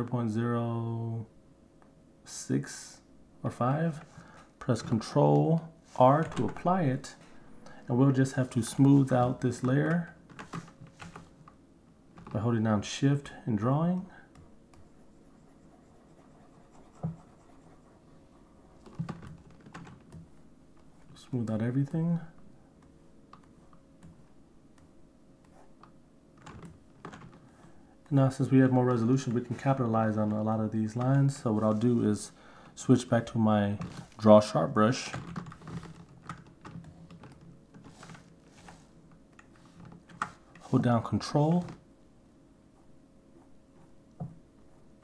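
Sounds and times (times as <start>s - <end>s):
faint steady hum: 0.0s - 45.0s.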